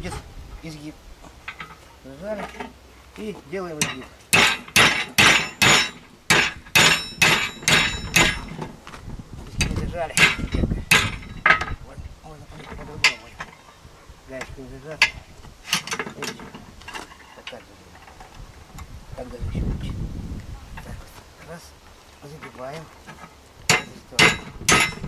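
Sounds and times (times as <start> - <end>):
hammer striking steel rod: 3.8 - 8.6, 10.2 - 11.6, 23.7 - 25.0.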